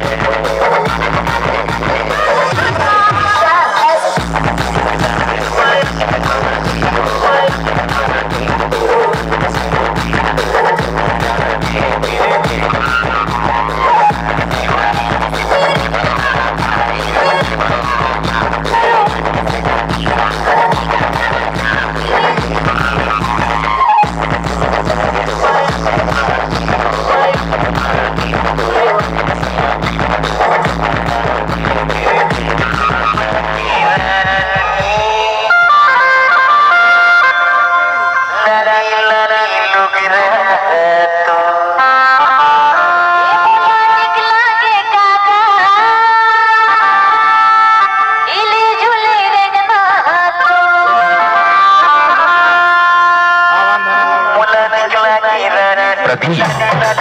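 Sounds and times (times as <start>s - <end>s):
loud dance music with bass beat: 0.0s - 35.6s, 52.7s - 57.0s
person singing: 0.0s - 35.7s, 38.0s - 57.0s.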